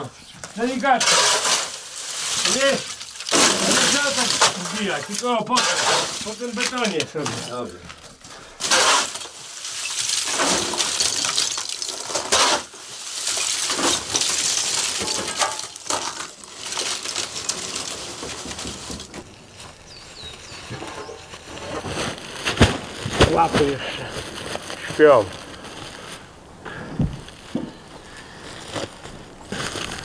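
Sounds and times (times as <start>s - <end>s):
charcoal clinking and rustling: 0.0s - 30.0s.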